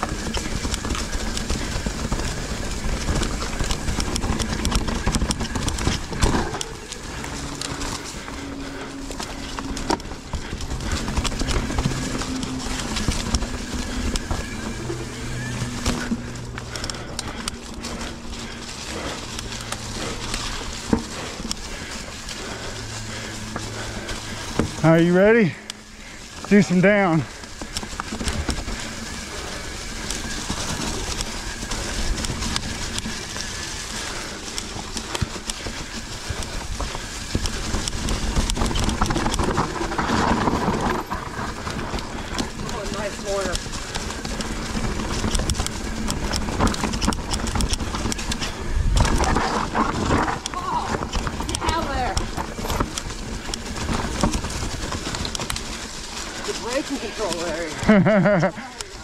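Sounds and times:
bike rattling over bumps: 0.0 - 59.0
tyre and wind noise: 0.0 - 59.0.

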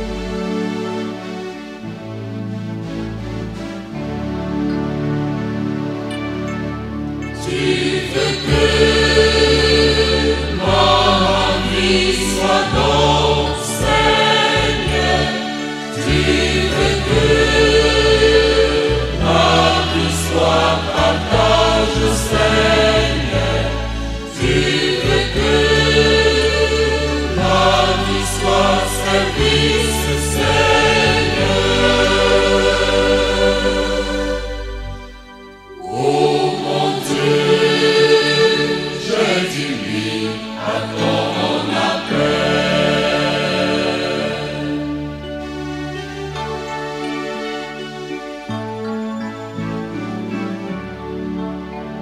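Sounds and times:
church choir singing: 0.0 - 52.0
bass line: 16.0 - 35.3.

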